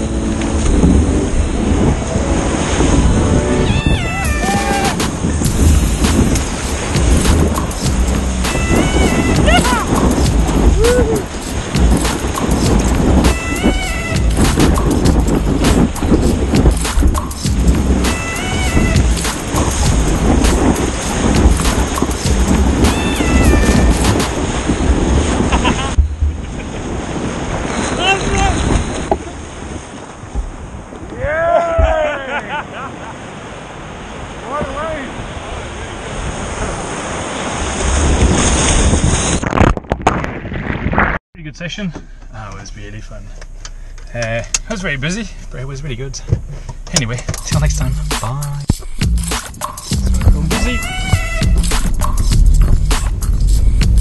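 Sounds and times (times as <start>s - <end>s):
whining calls with sliding pitch: 0.0s - 5.3s, 8.2s - 11.4s, 13.2s - 14.8s, 18.0s - 19.9s, 22.7s - 24.4s, 50.5s - 53.0s
background music: 0.0s - 24.4s, 47.4s - 54.0s
whitewater rushing: 0.0s - 39.6s, 47.0s - 54.0s
wind buffeting microphone: 0.0s - 41.2s, 42.9s - 54.0s
person whooping: 3.7s - 5.0s, 9.4s - 9.9s, 10.7s - 11.3s, 31.1s - 32.7s.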